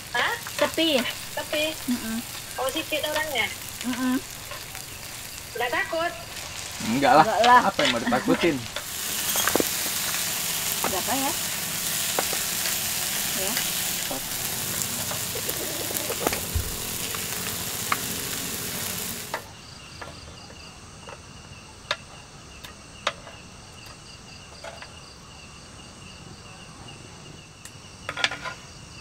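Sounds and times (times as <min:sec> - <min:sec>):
loud steady hiss: 0:00.0 - 0:19.8
crackles: 0:00.0 - 0:20.1
crickets chirping: 0:00.0 - 0:29.0.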